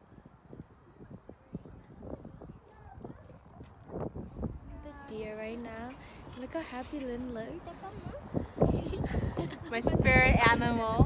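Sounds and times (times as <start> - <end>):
people's voices outdoors: 0.0 - 11.0
woman's voice: 4.7 - 11.0.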